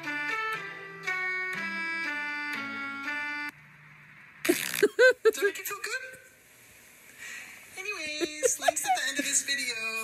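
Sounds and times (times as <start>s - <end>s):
organ-like keyboard chords: 0.0s - 3.6s
breathy burst of laughter: 4.5s - 5.5s.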